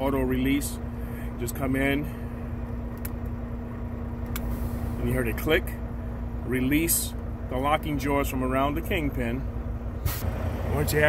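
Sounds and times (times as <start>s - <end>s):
truck engine idling: 0.0s - 11.0s.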